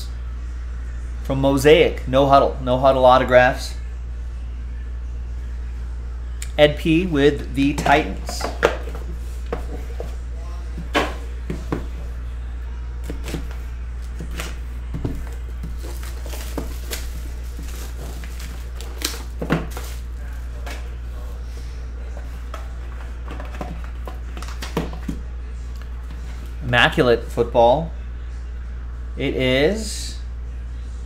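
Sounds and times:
steady low hum: 0:00.0 - 0:31.0
cardboard boxes knocking on table: 0:07.8 - 0:10.2, 0:14.9 - 0:17.0
cellophane wrap crinkling: 0:15.2 - 0:20.6.

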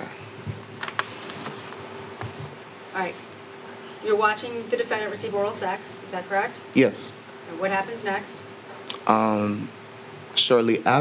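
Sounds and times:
steady buzzing hum: 0:00.0 - 0:11.0
person speaking: 0:08.8 - 0:09.7.

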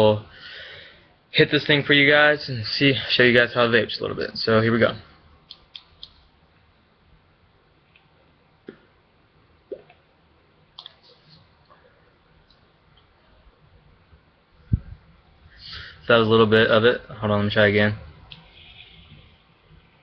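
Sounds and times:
small clicks: 0:05.5 - 0:06.2.

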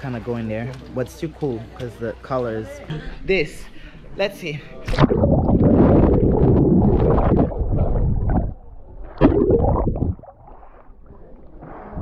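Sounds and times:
water sloshing and gurgling: 0:04.8 - 0:12.0.

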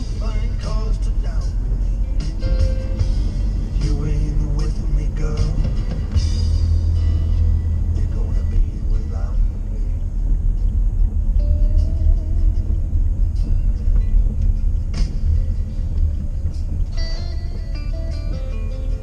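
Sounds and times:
car cabin road rumble: 0:00.0 - 0:19.0
music over car stereo: 0:00.0 - 0:19.0.

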